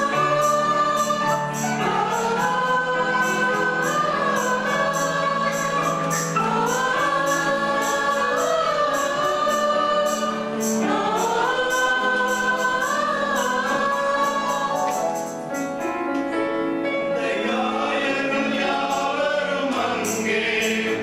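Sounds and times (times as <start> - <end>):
choir singing a hymn: 0.0 - 15.6, 16.8 - 21.0
light percussion beat: 0.4 - 16.0.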